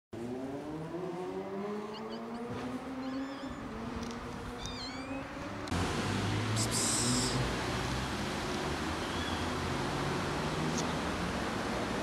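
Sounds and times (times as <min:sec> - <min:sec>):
low engine hum: 0:00.2 - 0:12.0
kitten meowing: 0:01.9 - 0:03.7, 0:04.6 - 0:05.2.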